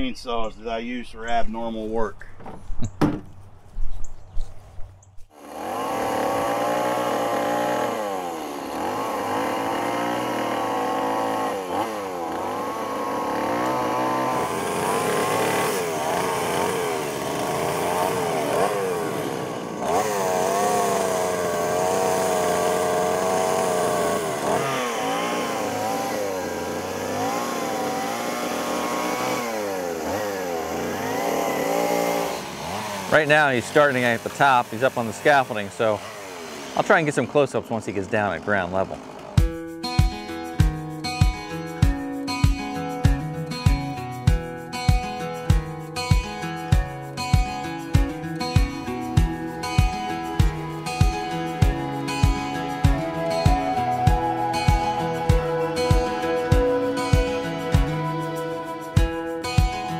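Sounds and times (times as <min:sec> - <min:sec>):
chainsaw cutting wood: 0:05.3 - 0:59.9.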